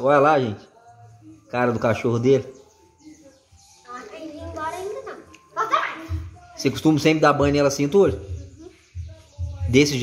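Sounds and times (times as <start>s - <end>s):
young child's vocal sounds: 3.9s - 6.3s.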